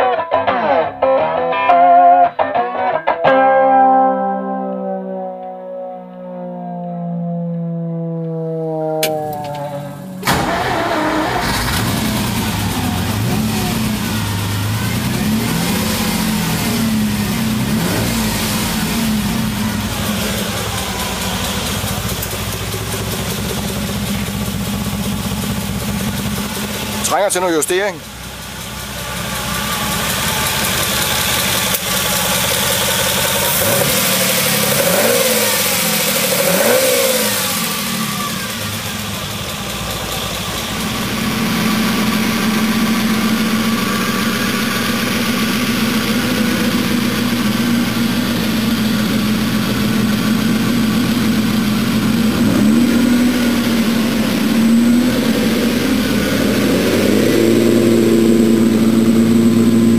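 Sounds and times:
car engine revving and idling: 6.2 - 59.9.

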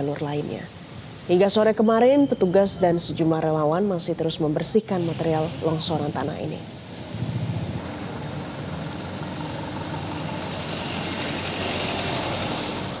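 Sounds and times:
steady traffic hiss: 0.0 - 13.0
vehicle engines idling: 6.6 - 13.0.

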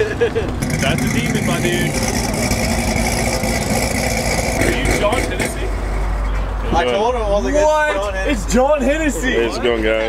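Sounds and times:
car engine idling: 0.2 - 7.9.

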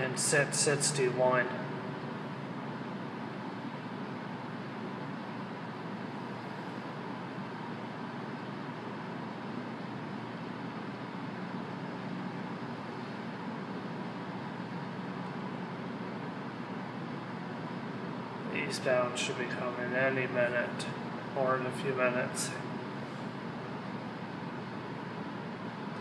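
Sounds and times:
steady background noise: 0.0 - 26.0.

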